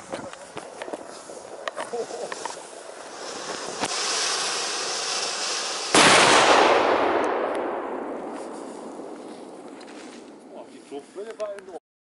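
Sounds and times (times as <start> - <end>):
firework hissing: 0.0 - 11.3
firework crack: 0.0 - 11.8
loud firework burst: 1.5 - 10.5.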